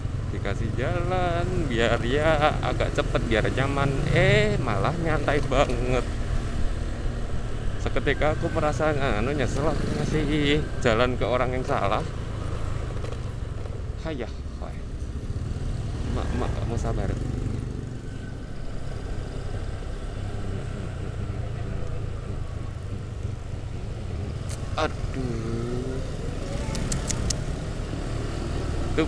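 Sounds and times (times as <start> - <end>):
road rumble: 0.0 - 29.0
scooter engine running: 15.1 - 29.0
person speaking: 24.4 - 27.4
sharp high ticks: 26.5 - 27.5.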